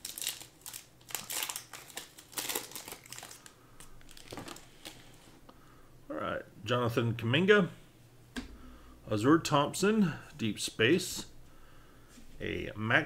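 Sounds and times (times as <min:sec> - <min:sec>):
foil wrapper crinkling: 0:00.0 - 0:05.1
cards rustling: 0:00.0 - 0:05.2.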